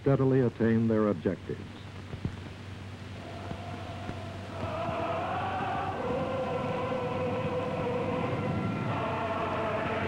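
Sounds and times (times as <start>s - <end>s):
choir holding sustained chords: 3.2s - 10.0s.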